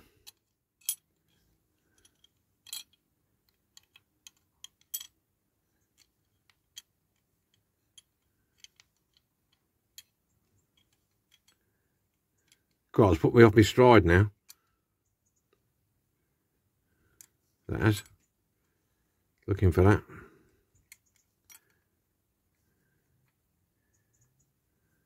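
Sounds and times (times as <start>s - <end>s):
small plastic parts clicking: 0.2s - 12.9s, 20.5s - 21.9s.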